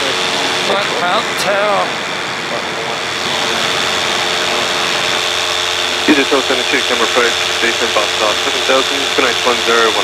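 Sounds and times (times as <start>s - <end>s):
paramotor engine droning: 0.0s - 10.0s.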